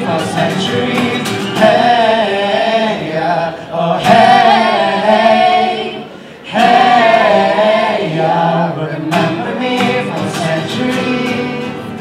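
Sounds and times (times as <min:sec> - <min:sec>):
a cappella choir singing chords: 0:00.0 - 0:12.0.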